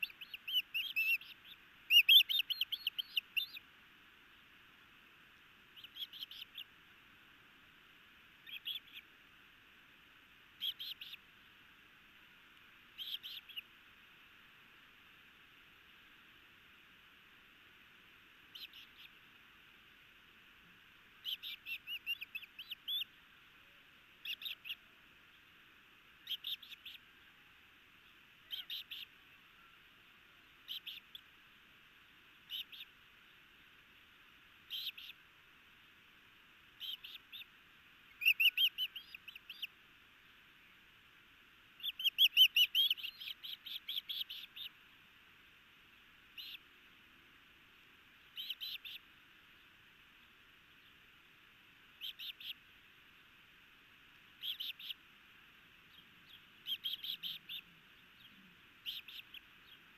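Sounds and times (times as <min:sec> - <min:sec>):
bird chick chirping: 0:00.0 - 0:03.6, 0:05.8 - 0:06.7, 0:08.4 - 0:09.0, 0:10.6 - 0:11.2, 0:12.9 - 0:13.7, 0:18.5 - 0:19.2, 0:21.2 - 0:23.1, 0:24.2 - 0:24.8, 0:26.2 - 0:27.0, 0:28.5 - 0:29.8, 0:30.6 - 0:31.3, 0:32.5 - 0:32.9, 0:34.7 - 0:35.2, 0:36.8 - 0:37.5, 0:38.1 - 0:39.7, 0:41.8 - 0:44.8, 0:46.3 - 0:46.7, 0:48.3 - 0:49.0, 0:52.0 - 0:52.6, 0:54.4 - 0:55.0, 0:55.9 - 0:59.9.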